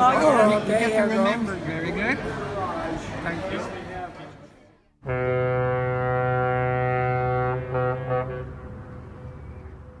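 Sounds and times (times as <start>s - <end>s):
horn echo: 5.0s - 9.0s
ship's horn blasts: 5.0s - 9.2s.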